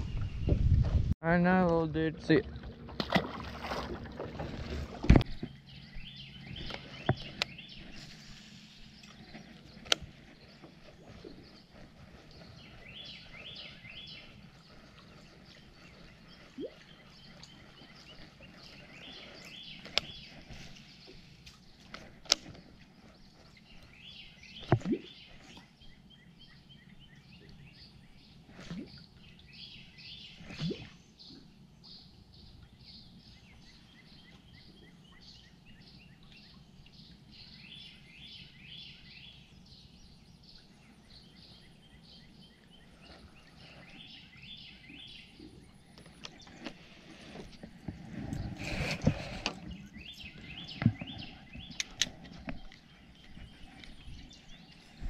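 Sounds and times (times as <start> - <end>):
songbird singing: 0.0 - 55.0.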